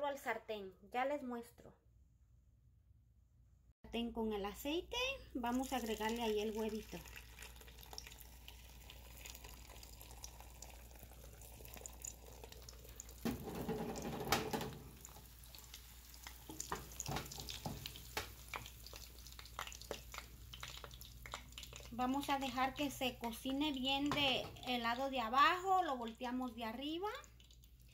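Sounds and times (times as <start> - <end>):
eggs sizzling in a pan: 5.5 - 27.9
crackling pops: 16.2 - 21.9.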